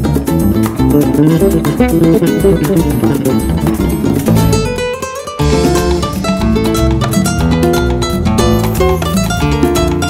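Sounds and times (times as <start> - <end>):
flamenco guitar plucked notes: 0.0 - 10.0.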